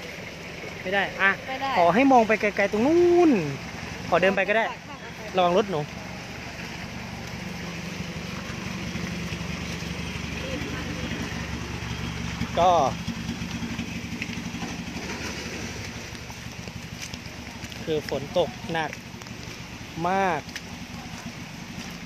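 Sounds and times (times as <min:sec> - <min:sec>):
engine idling: 0:00.0 - 0:22.0.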